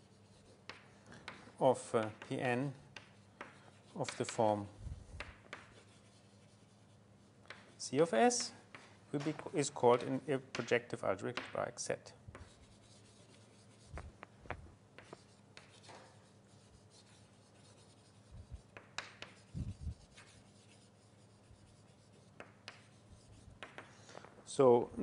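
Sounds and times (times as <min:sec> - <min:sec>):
writing on a board: 0:00.0 - 0:10.7, 0:11.3 - 0:11.7, 0:12.3 - 0:24.1.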